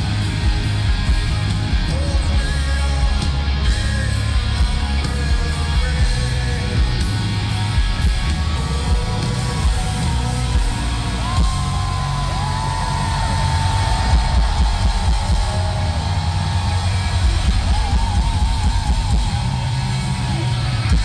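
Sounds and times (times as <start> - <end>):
rock band playing live: 0.0 - 21.0.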